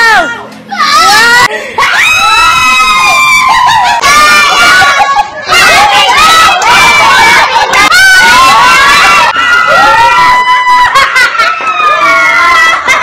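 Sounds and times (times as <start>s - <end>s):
people shouting and cheering: 0.0s - 13.0s.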